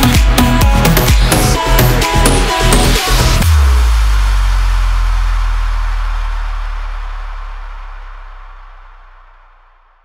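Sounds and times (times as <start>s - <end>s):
deep sustained bass note: 3.4s - 10.0s.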